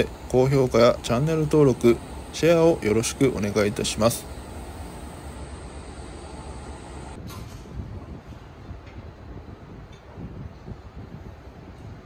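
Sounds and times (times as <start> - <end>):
street traffic rumble: 0.0 - 7.2.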